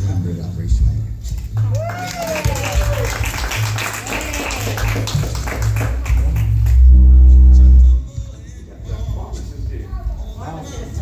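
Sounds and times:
small crowd clapping: 1.3 - 7.0
music with pulsing bass: 2.8 - 8.3
loud low hum: 4.8 - 10.1.

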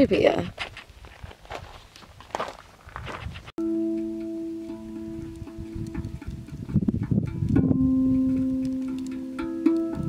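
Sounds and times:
quiet footsteps on stony ground: 0.2 - 3.6.

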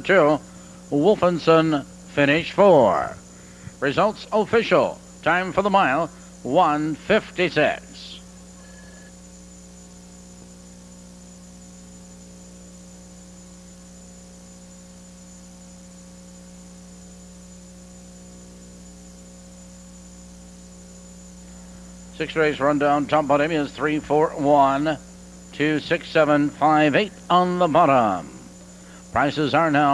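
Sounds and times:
electrical mains hum: 0.0 - 29.9.

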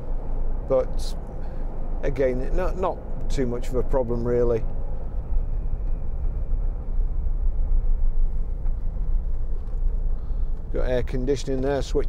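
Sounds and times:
engine drone: 0.0 - 12.0
road noise: 0.0 - 12.0.

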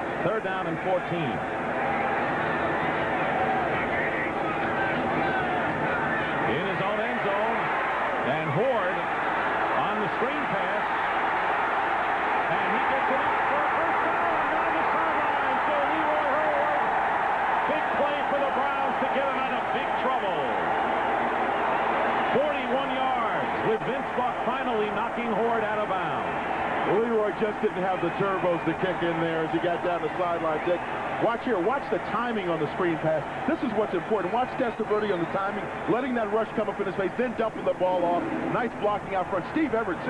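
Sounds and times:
stadium crowd cheering: 0.0 - 40.0.

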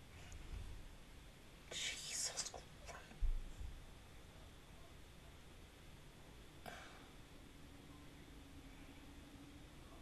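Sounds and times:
person whispering: 1.7 - 3.2.

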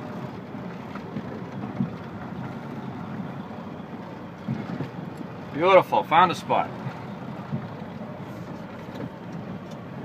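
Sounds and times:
engine and tyre rumble: 0.0 - 10.0.

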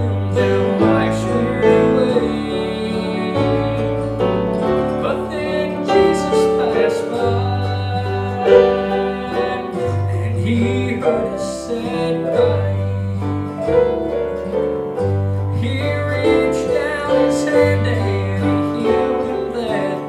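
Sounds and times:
gospel band playing: 0.0 - 20.0
mandolin picking: 0.0 - 20.0.

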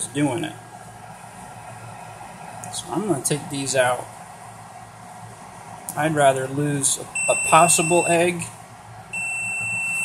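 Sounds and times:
fan hissing: 0.0 - 10.0.

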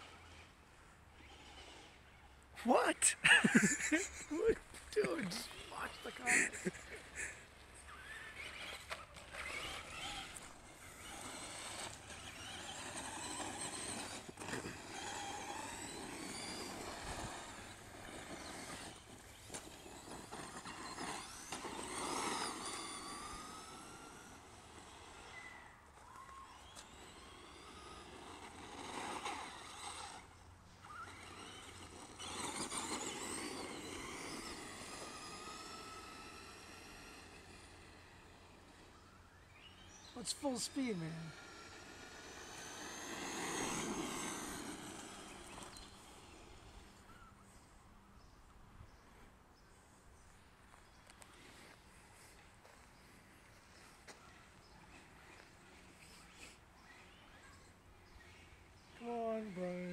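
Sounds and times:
toy truck electric motor whining: 0.0 - 47.8, 49.9 - 59.9.

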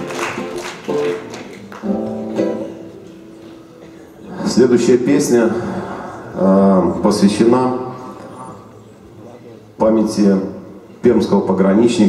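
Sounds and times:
acoustic guitar strumming: 0.0 - 3.9.

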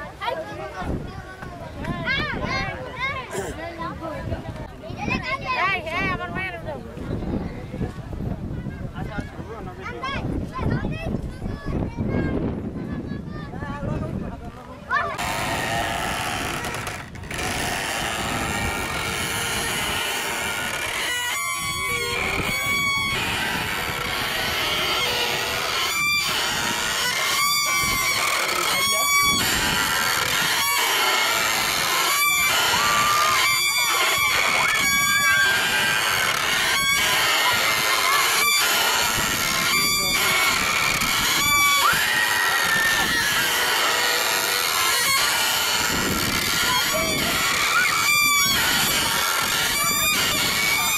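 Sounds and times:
children's voices: 0.0 - 6.5, 8.6 - 13.6
wooden wheel squeaking: 14.9 - 50.9.

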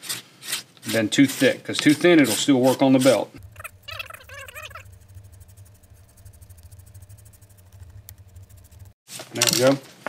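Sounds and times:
fast even ticking: 3.4 - 9.0
low steady hum: 3.4 - 9.0.

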